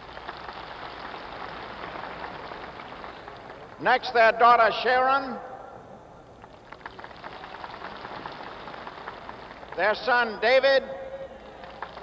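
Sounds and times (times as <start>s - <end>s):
crowd applause: 0.0s - 3.8s, 6.6s - 10.4s, 11.3s - 12.0s.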